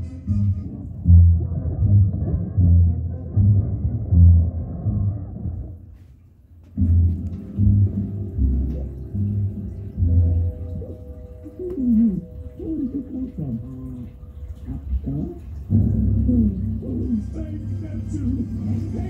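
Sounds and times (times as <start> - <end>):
bass-heavy music through subwoofer: 0.0 - 5.8, 6.8 - 10.4.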